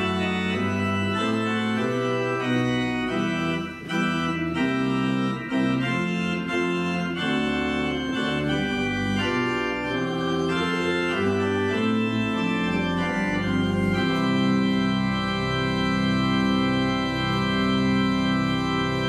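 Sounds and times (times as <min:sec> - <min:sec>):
church organ playing chords: 0:00.0 - 0:19.0.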